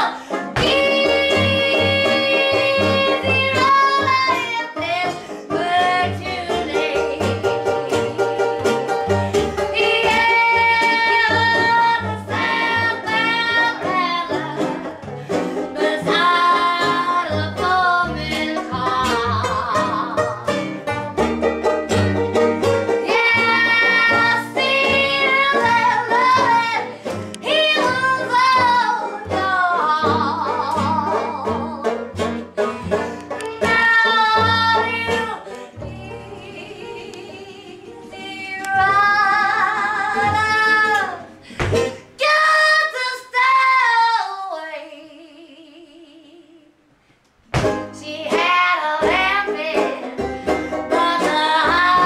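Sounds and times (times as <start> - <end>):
woman singing blues: 0.0 - 8.6, 9.4 - 20.8, 22.9 - 32.1, 33.3 - 46.8, 47.6 - 52.0
upright bass: 0.0 - 42.2, 47.5 - 52.0
acoustic guitar: 0.0 - 45.0, 47.0 - 52.0
banjo: 0.0 - 45.1, 47.5 - 52.0.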